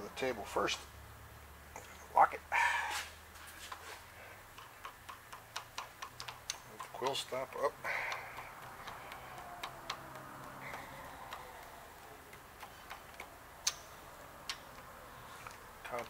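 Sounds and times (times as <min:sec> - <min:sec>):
light metallic taps: 0:04.5 - 0:16.0
sharp clicks: 0:04.5 - 0:16.0.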